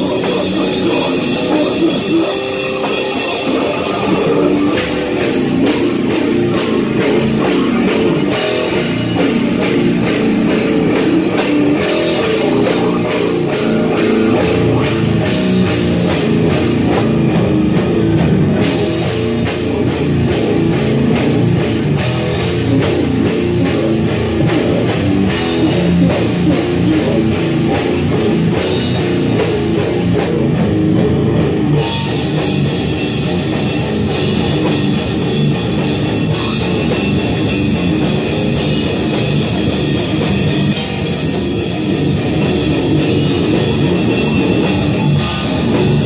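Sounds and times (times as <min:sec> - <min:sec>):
metal band playing: 0:00.0 - 0:46.0.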